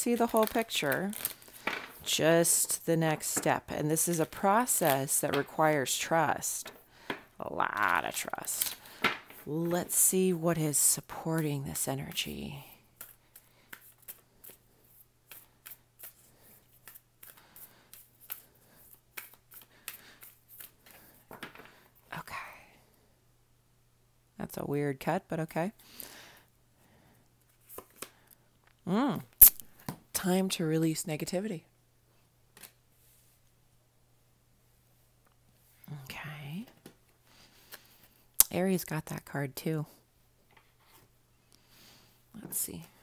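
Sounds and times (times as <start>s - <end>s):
cards being shuffled: 0.0s - 10.1s, 13.0s - 21.7s, 27.5s - 28.2s.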